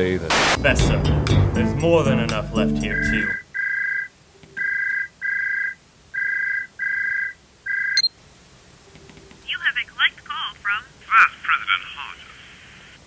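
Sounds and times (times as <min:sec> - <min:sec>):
person speaking: 0:00.6 - 0:03.4, 0:09.5 - 0:12.7
two-tone phone ringing: 0:02.9 - 0:08.1.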